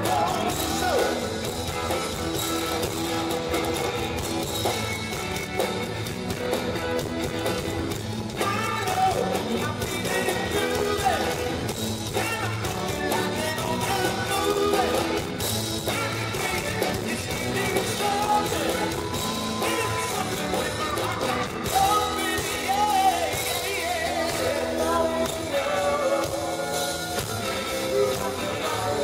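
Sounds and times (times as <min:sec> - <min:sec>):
man singing: 0:00.0 - 0:01.5, 0:08.3 - 0:29.0
bass guitar: 0:00.0 - 0:29.0
drums: 0:00.0 - 0:29.0
electric guitars: 0:00.0 - 0:29.0.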